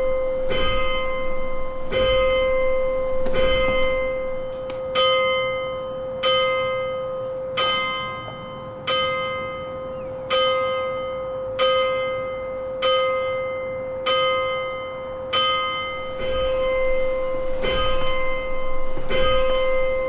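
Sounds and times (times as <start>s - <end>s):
church bell tolling: 0.0s - 20.0s.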